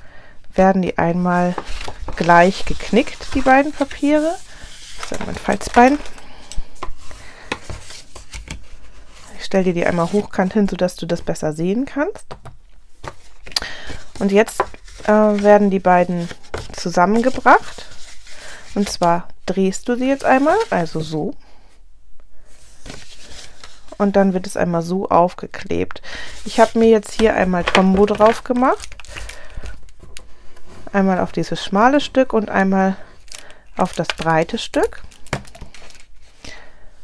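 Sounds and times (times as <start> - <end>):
paper scraping and rubbing: 1.3 - 6.1, 7.0 - 10.7, 13.9 - 19.2, 20.0 - 21.2, 22.6 - 24.2, 26.2 - 29.3.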